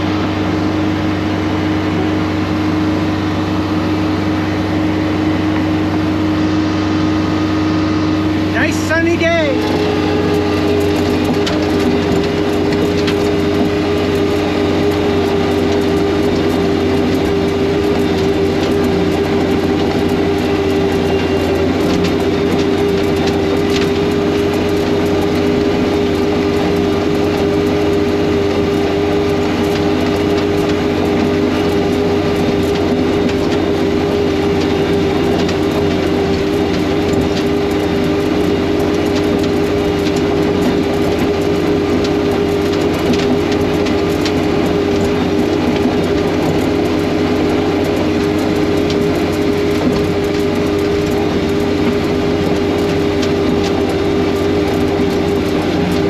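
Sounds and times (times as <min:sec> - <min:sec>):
snowblower engine drone: 0:00.0 - 0:56.0.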